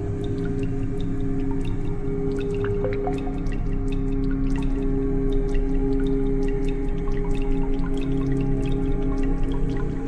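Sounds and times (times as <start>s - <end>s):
water drips: 0.0s - 10.0s.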